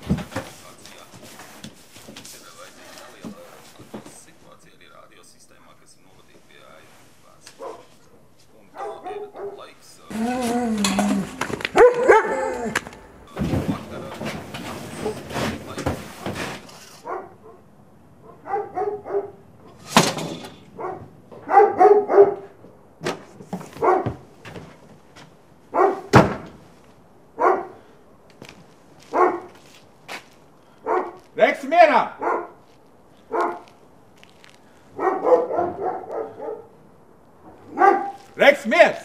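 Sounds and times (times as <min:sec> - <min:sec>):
dog barking: 0:07.5 - 0:08.0, 0:08.7 - 0:12.9, 0:17.0 - 0:19.8, 0:20.7 - 0:22.6, 0:23.7 - 0:24.2, 0:25.7 - 0:26.2, 0:27.4 - 0:27.9, 0:29.1 - 0:29.6, 0:30.8 - 0:31.4, 0:32.1 - 0:32.6, 0:33.3 - 0:33.8, 0:34.9 - 0:36.8, 0:37.6 - 0:38.4.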